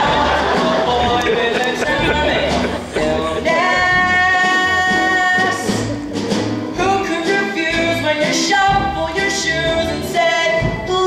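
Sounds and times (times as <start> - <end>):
musical accompaniment with bass line: 0.0 - 11.0
boy singing: 0.9 - 5.9, 6.8 - 11.0.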